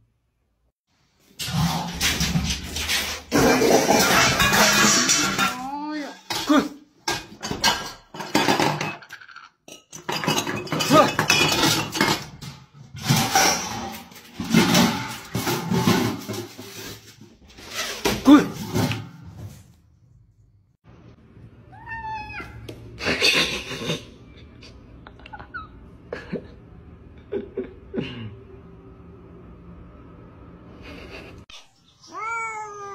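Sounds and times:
wok and lid clattering: 3.3 - 5.6, 6.3 - 16.7
cat meowing: 21.7 - 22.6, 32.0 - 32.9.

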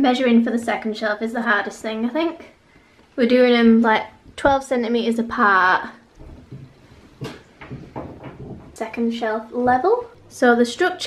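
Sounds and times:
metal knocking on wall: 6.2 - 10.2.

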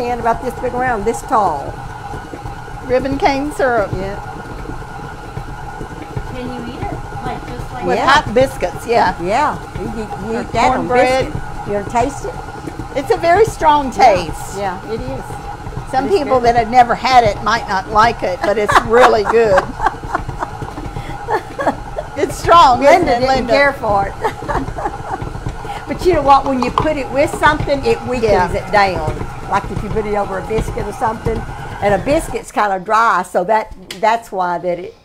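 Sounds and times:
stand mixer motor humming: 0.0 - 32.6.

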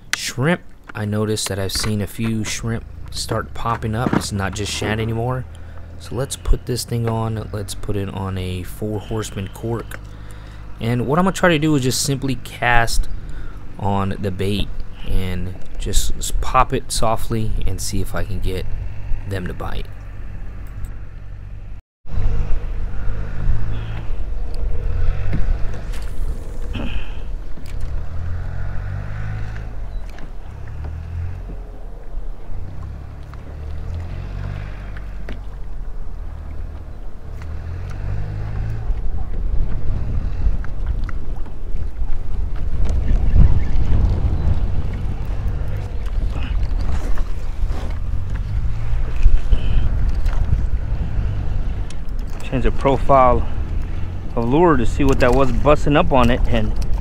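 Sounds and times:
wind buffeting microphone: 22.1 - 57.0.

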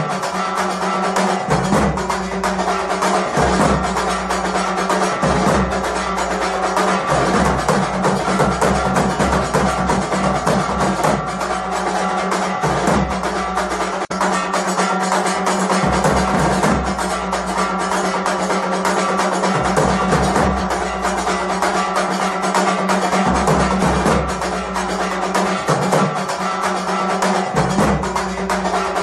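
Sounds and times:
drums and percussion fast beat: 0.0 - 29.0.

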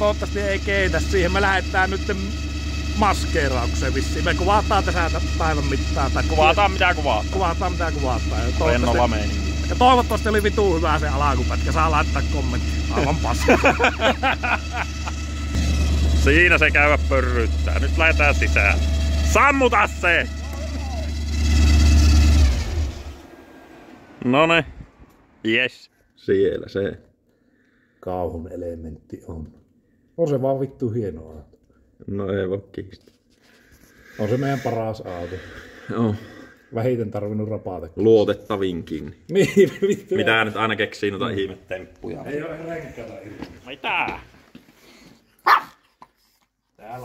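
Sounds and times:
car engine idling and shutting off: 0.0 - 25.4
small dog barking: 45.4 - 45.8.

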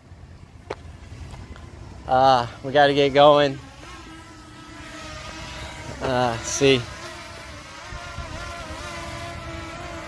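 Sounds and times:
drone propellers buzzing whine: 0.0 - 10.0
wind rumble on microphone: 7.8 - 9.5.

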